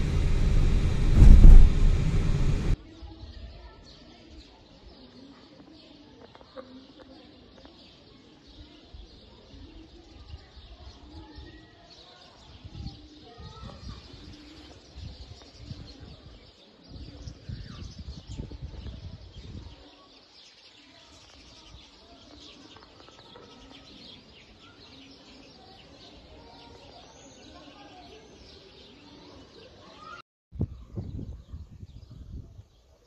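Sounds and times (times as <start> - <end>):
birds chirping: 0.0 - 2.8
wind buffeting microphone: 0.0 - 2.8, 12.4 - 19.8, 30.6 - 32.7.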